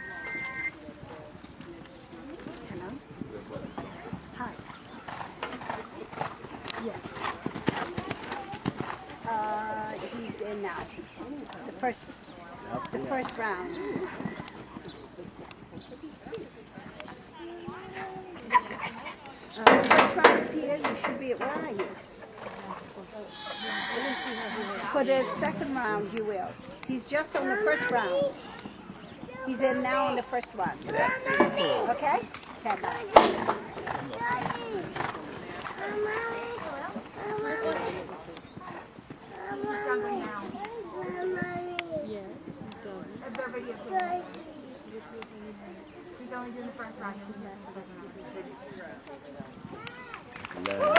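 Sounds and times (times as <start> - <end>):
faint background talking: 0.0 - 50.9
horse hoofbeats on sand: 1.0 - 18.4, 27.2 - 44.2
woman speaking: 23.6 - 28.2.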